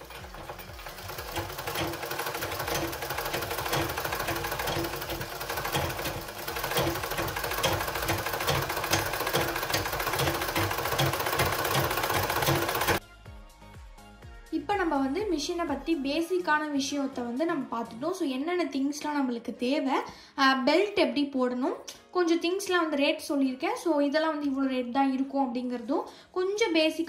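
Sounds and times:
treadle sewing machine clattering: 0:00.0 - 0:13.0.

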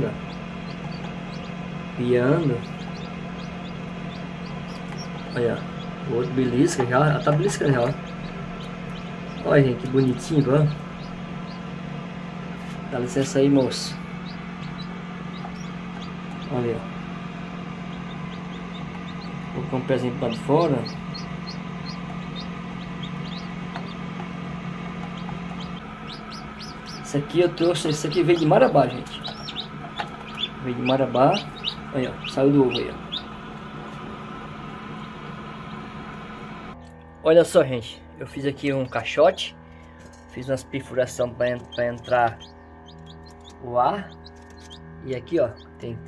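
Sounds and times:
chicks peeping: 0:00.0 - 0:36.8, 0:41.0 - 0:46.0
incubator hum: 0:00.0 - 0:46.0.

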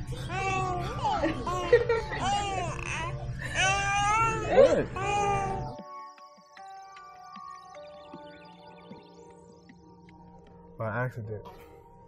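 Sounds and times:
soft music with held notes: 0:00.0 - 0:12.0
adult and infant cooing baby talk: 0:00.1 - 0:06.1.

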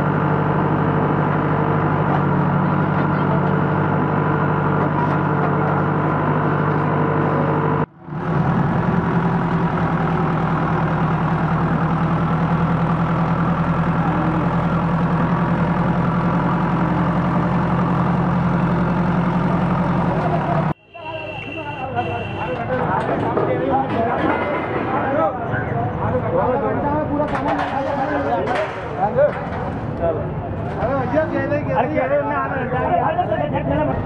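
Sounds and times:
diesel engine running: 0:00.0 - 0:20.8, 0:21.5 - 0:34.0.

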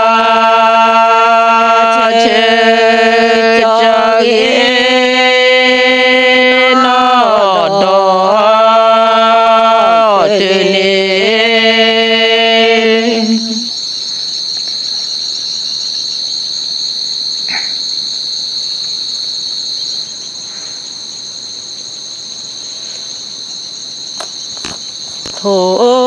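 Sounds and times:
insects chirring: 0:00.0 - 0:26.0.

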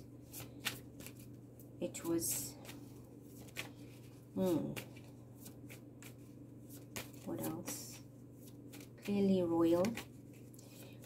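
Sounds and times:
steady low hum: 0:00.0 - 0:11.0
cards rustling and flicking: 0:00.2 - 0:11.0.

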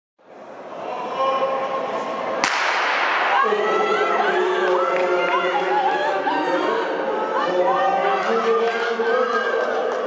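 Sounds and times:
crowd chatter: 0:00.3 - 0:10.0.

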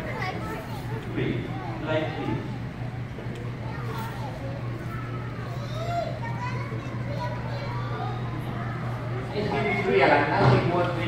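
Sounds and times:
audience chatter with children: 0:00.0 - 0:11.0
steady low hum: 0:00.0 - 0:11.0.

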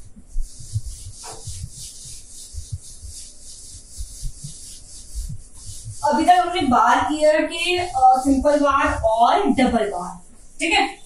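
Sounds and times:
duster scrubbing whiteboard: 0:00.0 - 0:11.0.

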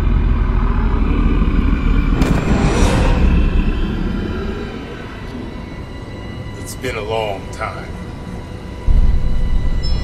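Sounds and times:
deep low rumble: 0:00.0 - 0:05.8.

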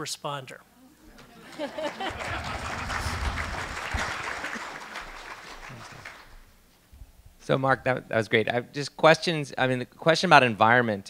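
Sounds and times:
audience laughing: 0:01.0 - 0:06.2
people clapping: 0:01.2 - 0:06.5.

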